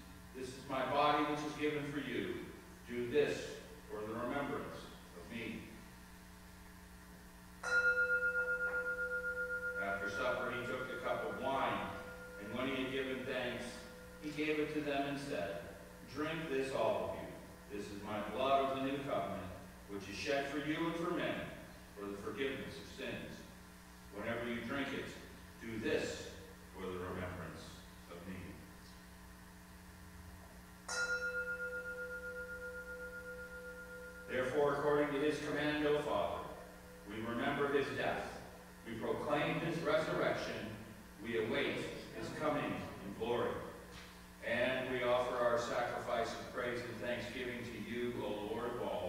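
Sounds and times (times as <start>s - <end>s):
altar bell ringing: 7.6s - 14.5s, 30.8s - 37.2s.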